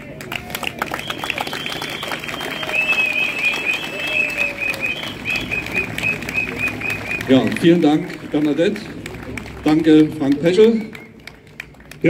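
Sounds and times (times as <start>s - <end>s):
crowd applauding: 0.0s - 12.0s.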